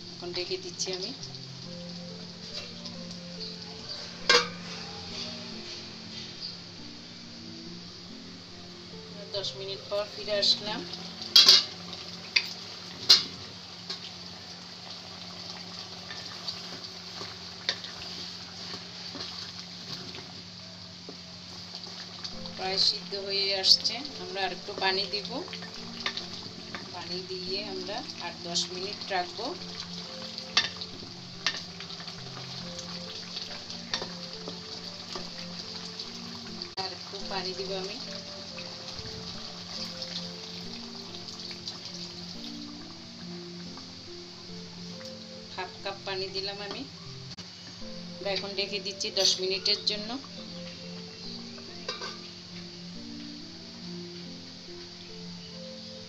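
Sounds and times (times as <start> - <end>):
curry sizzling in a pot: 0.0 - 56.0
metal lid clanking on pot: 4.2 - 5.3, 11.3 - 11.8, 12.4 - 14.1, 49.2 - 49.5, 51.8 - 52.3
wooden spoon stirring: 15.2 - 42.4.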